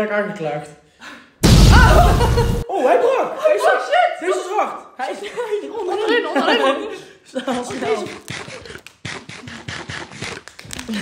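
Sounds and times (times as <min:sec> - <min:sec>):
chewing hard candy: 0:07.9 - 0:11.0.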